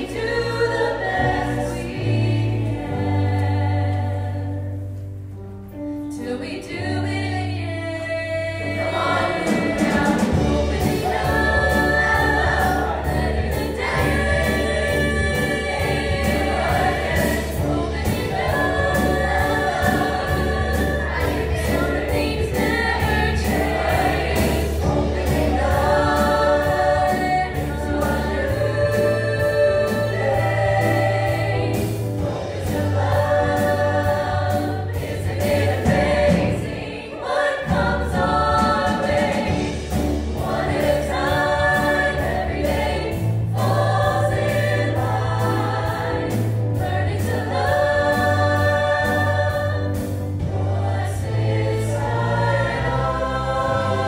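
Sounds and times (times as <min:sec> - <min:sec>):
choir singing in parts: 0:00.0 - 0:05.1, 0:06.1 - 0:54.0
piano accompaniment: 0:00.0 - 0:54.0.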